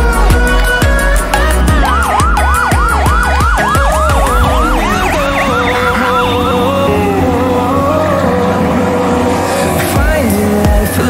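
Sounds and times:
background music with a beat: 0.0s - 11.0s
fire engine siren yelping: 0.1s - 9.9s.

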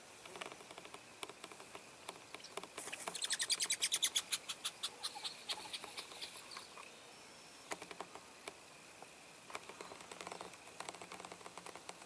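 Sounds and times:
bird trilling: 2.4s - 6.8s.

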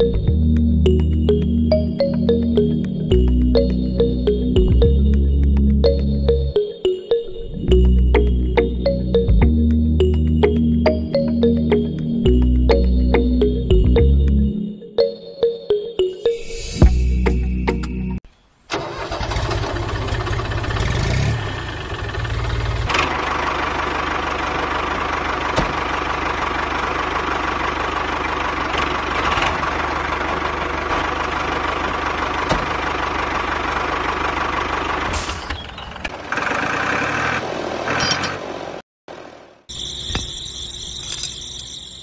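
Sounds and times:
tractor engine starting and running: 0.0s - 14.5s, 18.7s - 42.0s.

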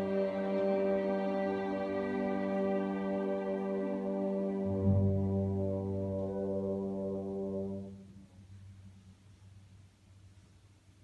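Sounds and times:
orchestra holding low chord: 0.0s - 8.9s.

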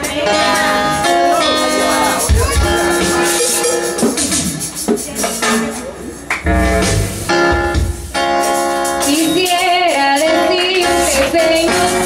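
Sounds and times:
sustained instrumental chords: 1.1s - 8.6s
woman singing into a microphone: 9.0s - 12.0s.

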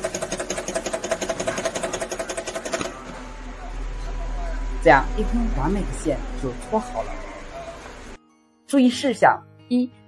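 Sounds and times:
fast mechanical chatter of machine: 0.0s - 8.1s.

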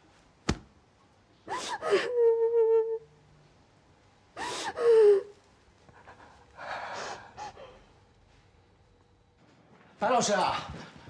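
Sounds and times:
woman crying: 1.5s - 3.1s, 4.4s - 5.4s.

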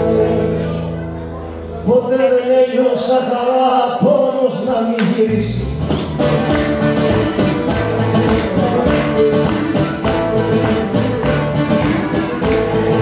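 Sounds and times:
electric bass: 0.0s - 1.8s, 5.3s - 13.0s
strummed plucked strings: 5.6s - 13.0s.

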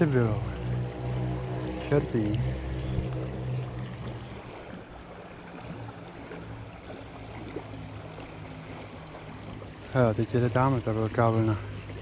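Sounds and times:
low hum: 0.0s - 12.0s
river water washing against bank: 0.0s - 12.0s.

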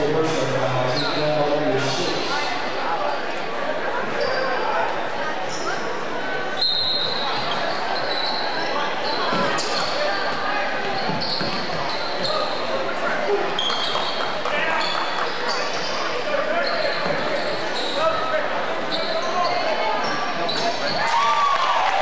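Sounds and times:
murmur of crowd voices: 0.0s - 22.0s
sneakers squeaking on court: 4.2s - 4.6s, 6.6s - 12.8s, 13.5s - 18.2s, 18.8s - 21.1s.

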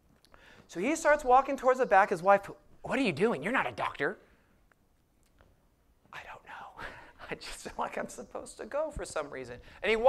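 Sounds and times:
man whispering: 6.1s - 10.0s.

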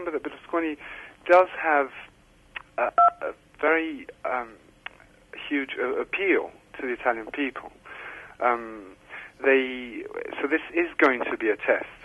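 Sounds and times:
man speaking over telephone line: 2.8s - 4.6s, 5.4s - 7.8s, 8.4s - 12.0s
two-tone beep: 3.0s - 3.2s.

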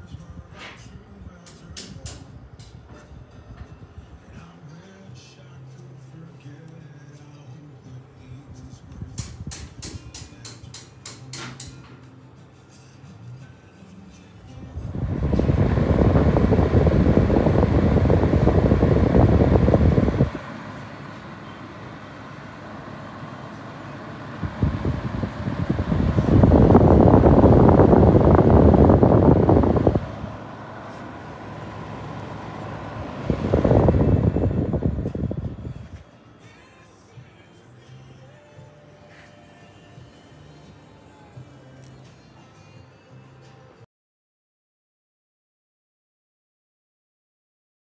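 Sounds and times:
fan heater rushing air: 0.0s - 42.2s.

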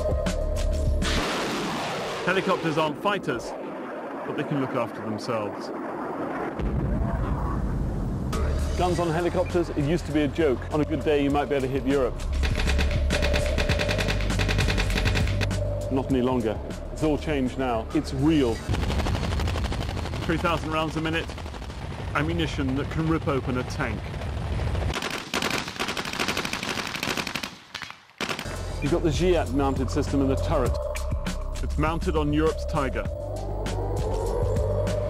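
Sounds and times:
automatic cannon firing rapid burst: 18.7s - 28.5s
automatic cannon firing: 24.1s - 28.6s
steady low rumble: 28.5s - 35.0s.

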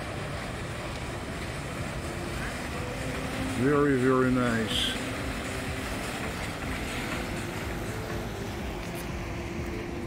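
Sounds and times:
engine rumble: 0.0s - 10.0s
traffic noise: 0.0s - 10.0s.

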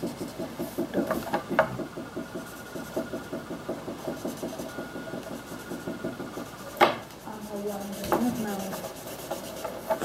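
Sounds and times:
marker colouring on paper: 0.0s - 10.0s.

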